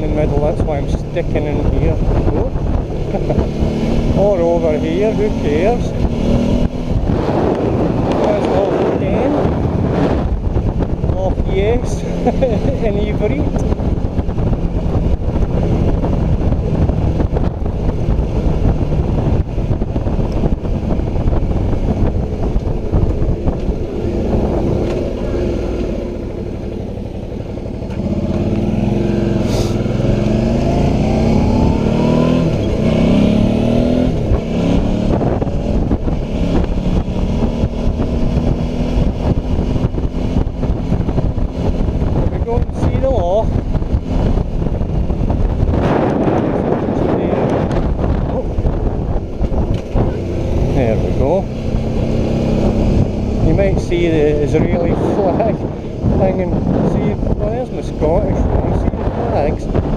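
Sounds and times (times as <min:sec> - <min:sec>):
motorcycle engine accelerating: 0:00.0 - 0:59.9
wind rushing over microphone: 0:00.0 - 0:59.9.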